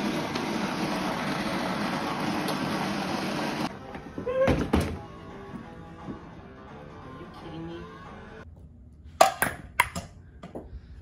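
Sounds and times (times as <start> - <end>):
ping-pong ball bouncing: 9.2 - 10.2.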